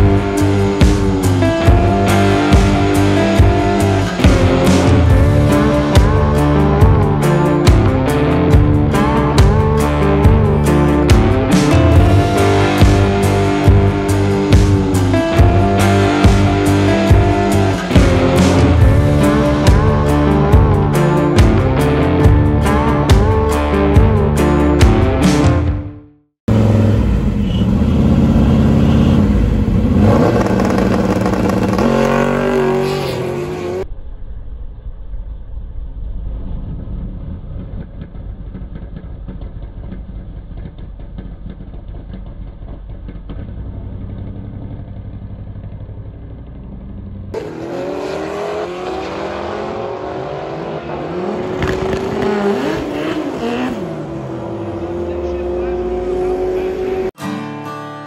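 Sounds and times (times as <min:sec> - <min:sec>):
drag car engine revving: 0:26.5 - 0:34.1, 0:34.8 - 0:57.2.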